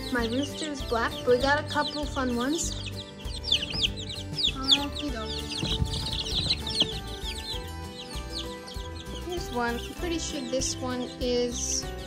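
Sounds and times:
chicks peeping: 0.0 - 12.0.

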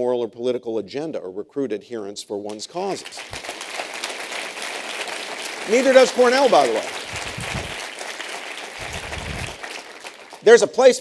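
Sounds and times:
audience applauding: 2.8 - 10.7.

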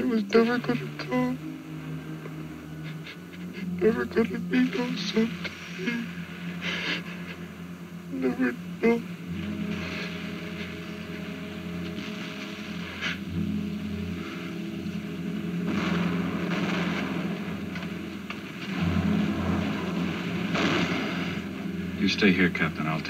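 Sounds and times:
low mechanical engine rumble: 0.0 - 23.0
rushing noise: 0.6 - 23.0.

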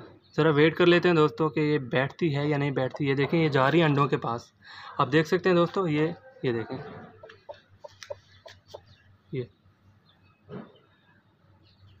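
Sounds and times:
hen clucking quietly: 6.4 - 9.0.

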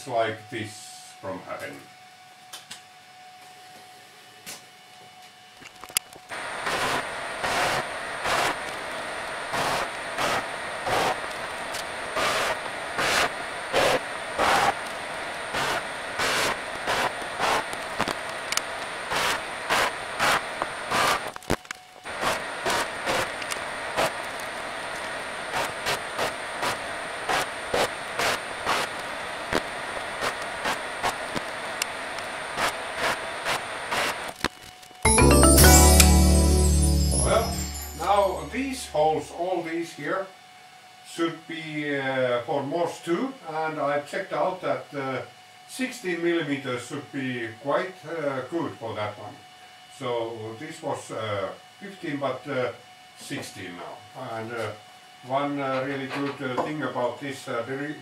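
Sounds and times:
drill press motor whine: 5.2 - 34.4
drill bit cutting wood: 6.4 - 8.7, 9.5 - 11.3, 12.1 - 14.8, 15.5 - 17.8, 19.1 - 21.4.

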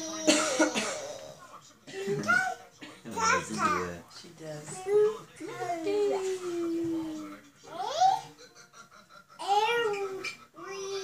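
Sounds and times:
children laughing and babbling: 7.7 - 11.0.

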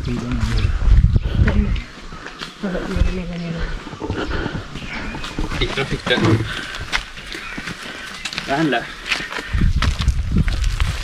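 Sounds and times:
footsteps on dirt path: 0.0 - 11.0
wind buffeting microphone: 0.0 - 11.0.

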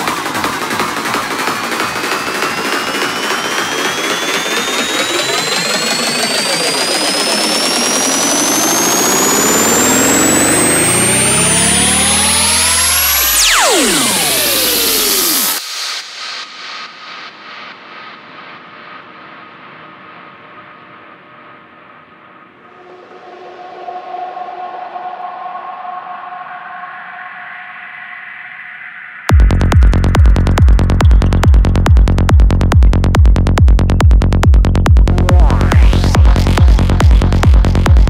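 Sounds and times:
rising synth sweeps: 1.7 - 15.6, 22.5 - 38.0
repeating echoes: 29.3 - 38.0.

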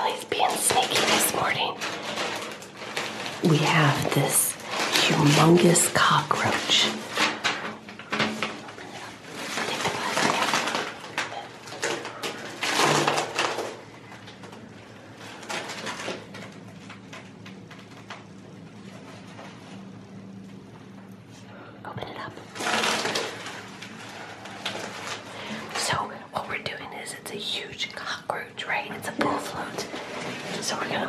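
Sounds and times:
plastic packaging crinkling: 0.0 - 20.8, 22.0 - 31.0.

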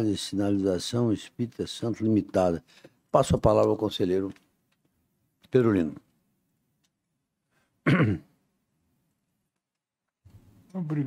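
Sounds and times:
man clearing his throat: 7.8 - 8.4.

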